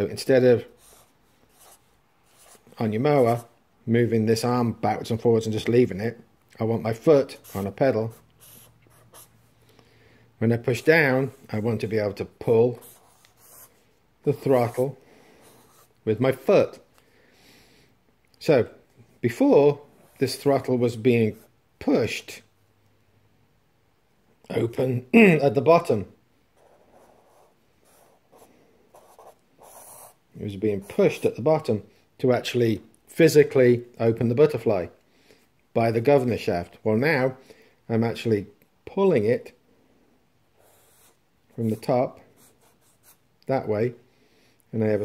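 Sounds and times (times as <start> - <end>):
marker pen drawing on paper: 0.6 - 3.5, 7.2 - 9.5, 10.6 - 16.0, 26.6 - 30.2, 40.6 - 43.2
felt-tip marker strokes on paper: 0.7 - 3.5, 7.3 - 9.4.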